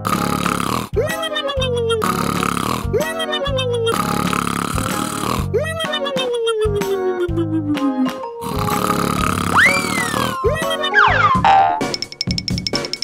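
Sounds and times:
comic snoring with whistle: 0.0s - 1.0s, 1.9s - 5.5s, 7.7s - 11.9s
background music: 0.0s - 13.0s.

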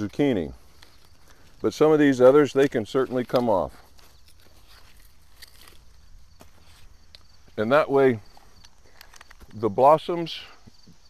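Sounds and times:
soft crackles of stems cut: 0.0s - 9.7s
leaves rustling: 0.0s - 10.6s.

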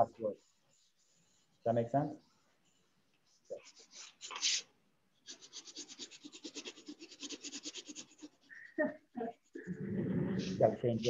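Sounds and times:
quick scratching strokes: 3.2s - 8.5s.

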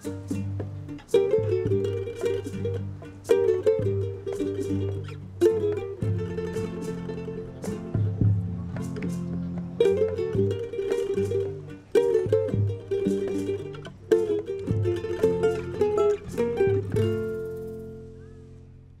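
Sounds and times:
plucked string instrumental music: 0.0s - 19.0s.

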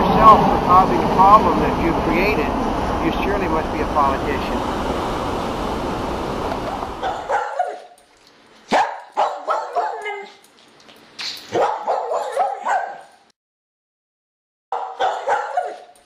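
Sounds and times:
wind on microphone: 0.0s - 7.3s
dog barking: 7.0s - 8.0s, 8.7s - 10.4s, 11.5s - 13.1s, 14.7s - 16.0s.

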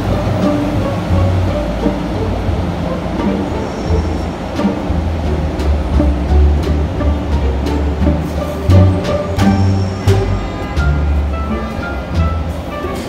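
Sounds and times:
street noise: 0.0s - 13.0s.

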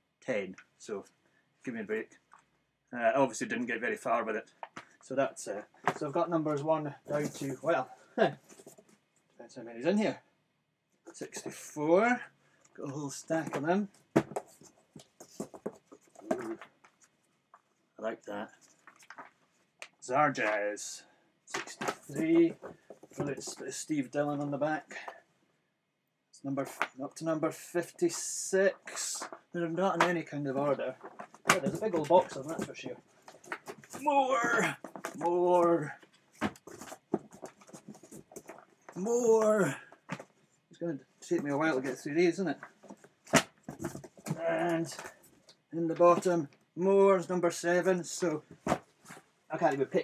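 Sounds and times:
paper rustling: 21.5s - 23.6s, 28.8s - 40.2s
person murmuring: 39.0s - 39.8s.

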